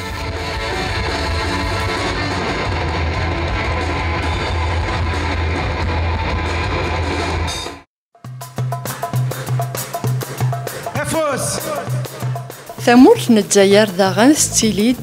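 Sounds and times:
electric guitars strummed: 0.0 - 7.6
bass guitar: 0.0 - 7.8
drum kit: 0.0 - 15.0
rock band playing: 0.0 - 15.0.

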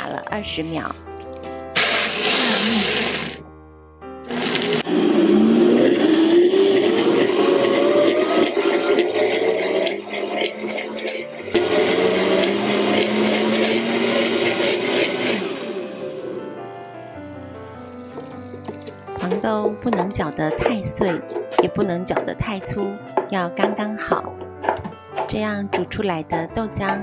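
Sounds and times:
blender grinding: 1.8 - 3.4, 4.2 - 16.6, 18.1 - 27.0.

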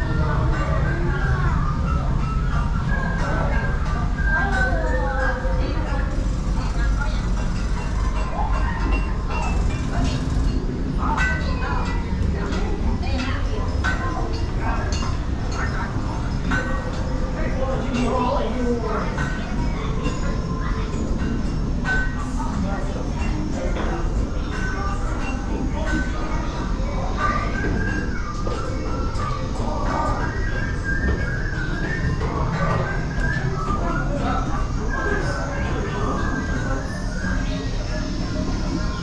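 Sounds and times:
people talking indistinctly: 0.0 - 39.0.

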